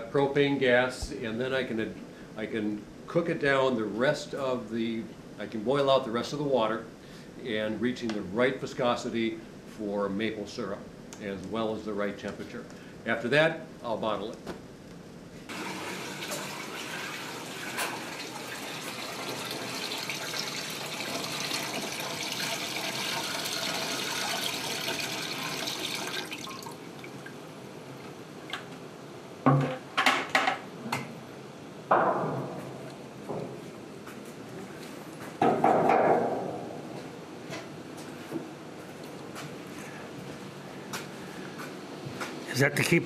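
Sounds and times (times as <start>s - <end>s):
sharp knocks: 35.4s - 36.7s.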